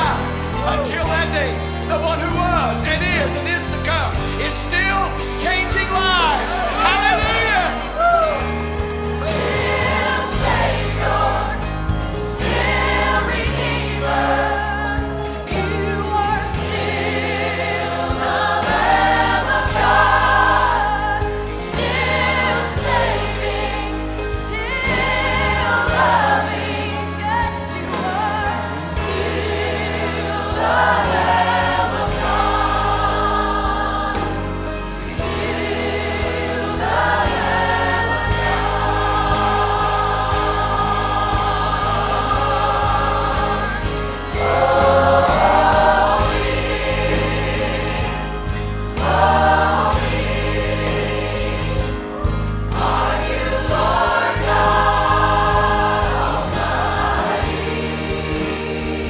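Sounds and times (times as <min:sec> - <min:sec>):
choir and lead singer singing: 0:09.0 - 0:59.0.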